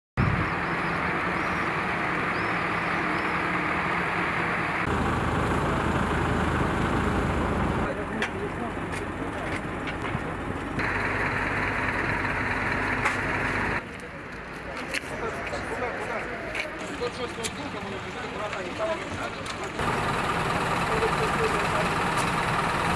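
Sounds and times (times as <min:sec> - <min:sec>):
buses idling: 0:00.2 - 0:22.9.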